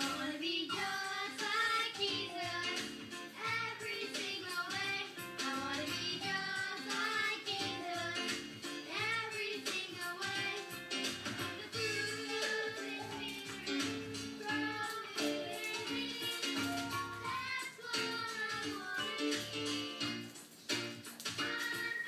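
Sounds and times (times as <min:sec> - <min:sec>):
children singing with music: 0:00.0 - 0:22.0.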